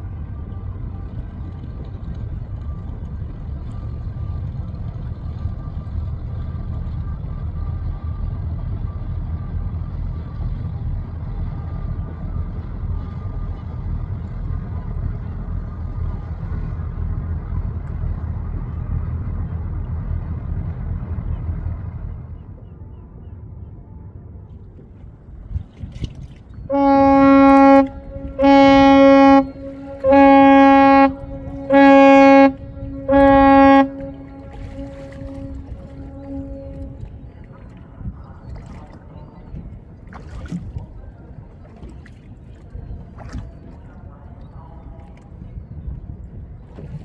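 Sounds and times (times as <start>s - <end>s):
low rumble: 0.0s - 41.8s
ship's horn blasts echoing: 26.6s - 38.1s.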